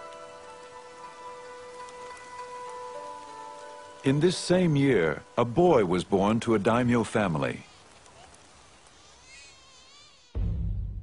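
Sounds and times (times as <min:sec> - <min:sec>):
high-pitched insect buzzing: 0:09.0 - 0:10.6.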